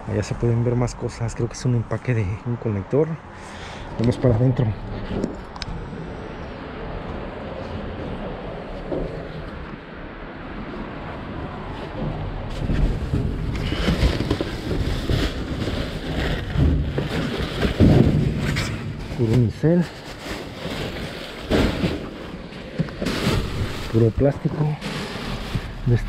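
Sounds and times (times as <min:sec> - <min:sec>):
muffled rustling and handling: 0:11.8 - 0:26.0
plastic bags and styrofoam crinkling: 0:12.8 - 0:26.0.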